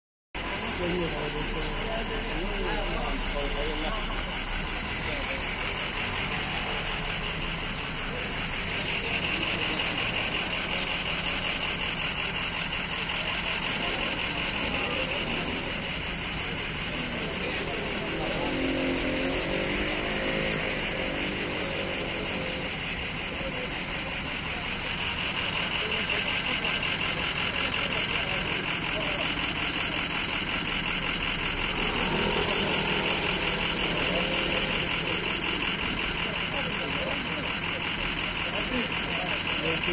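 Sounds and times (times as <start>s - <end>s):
people talking: 0.4s - 39.9s
vehicle engine idling: 0.4s - 39.9s.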